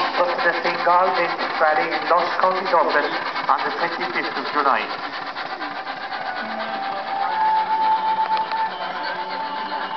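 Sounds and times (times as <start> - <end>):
steam engine exhaust chuffing: 0.0 - 9.9
steady high tone: 5.8 - 9.9.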